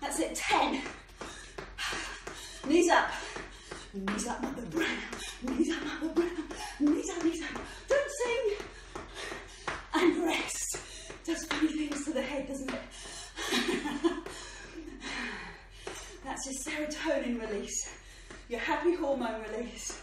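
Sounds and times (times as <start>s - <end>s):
woman laughing and panting: 1.3s - 7.9s, 12.9s - 15.7s.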